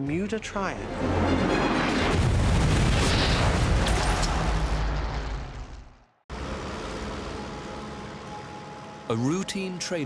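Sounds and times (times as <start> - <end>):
propeller aircraft engines droning: 6.3 - 10.0.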